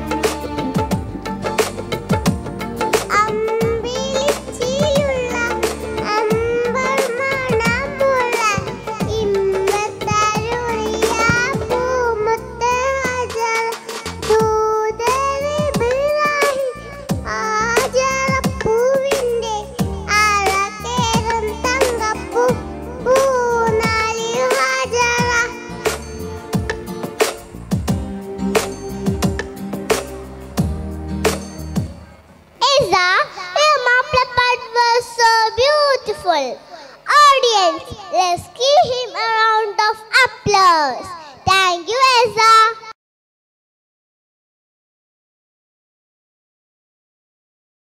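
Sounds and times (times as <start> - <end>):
music accompaniment with drums: 0.0 - 32.6
girl singing: 3.1 - 25.8, 32.6 - 43.0.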